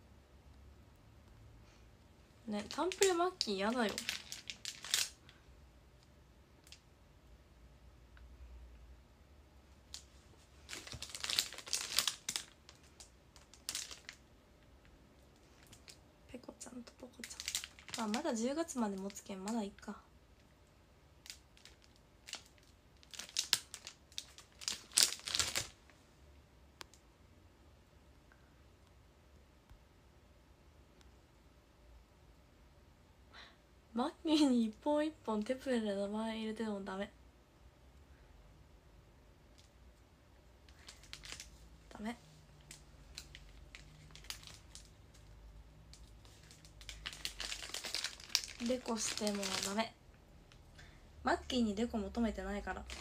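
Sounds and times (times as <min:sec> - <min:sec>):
plastic packaging crinkling: 0:02.4 - 0:05.4, 0:09.9 - 0:14.3, 0:15.4 - 0:16.0, 0:16.6 - 0:19.9, 0:21.2 - 0:26.0, 0:40.6 - 0:50.6, 0:52.1 - 0:53.0.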